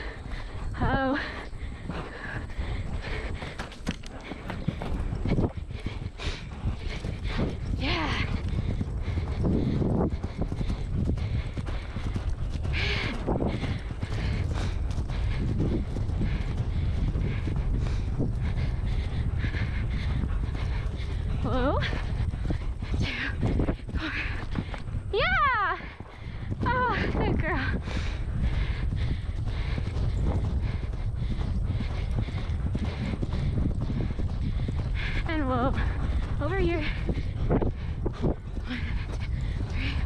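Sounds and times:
horse hoofbeats on turf: 0.0s - 40.0s
wind rumble on microphone: 0.0s - 40.0s.

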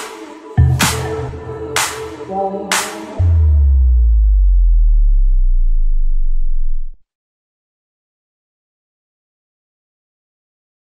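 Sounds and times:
deep synth sub-bass note: 3.2s - 7.0s.

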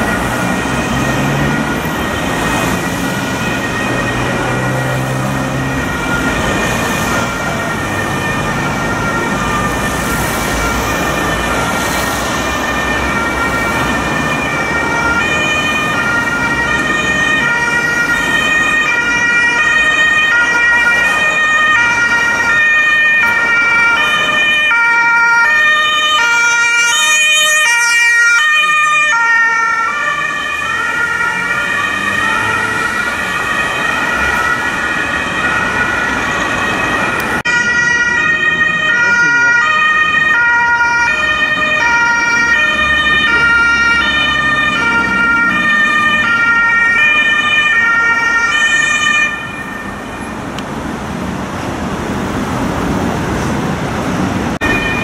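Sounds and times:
ambulance two-tone siren: 0.0s - 50.6s, 53.7s - 55.0s
traffic noise: 0.0s - 55.0s.

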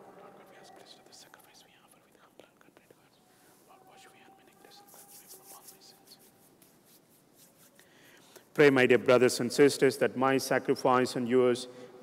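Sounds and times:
man whispering: 0.0s - 6.2s.

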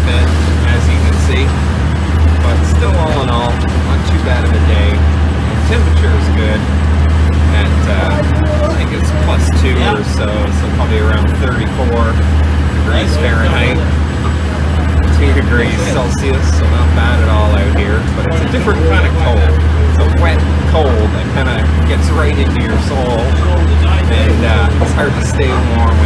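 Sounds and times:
boat engine droning: 0.0s - 26.0s
indistinct voices talking: 0.0s - 26.0s.

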